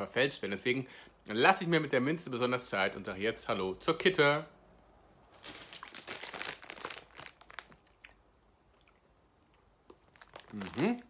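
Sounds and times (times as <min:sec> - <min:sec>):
person chewing gummy candy: 0:05.5 - 0:11.0
mouth clicks and smacks: 0:07.5 - 0:10.8.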